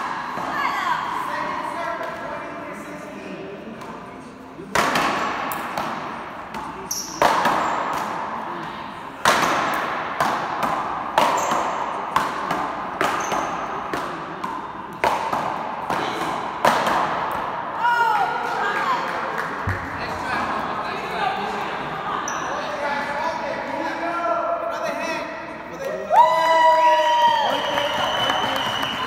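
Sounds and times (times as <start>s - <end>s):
paddles hitting ball: 4.6s - 17.7s.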